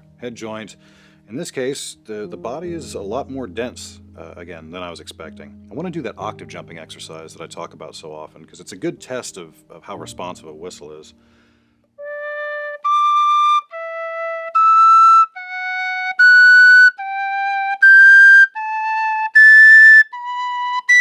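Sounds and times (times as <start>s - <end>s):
tin whistle playing scale: 12.0s - 21.0s.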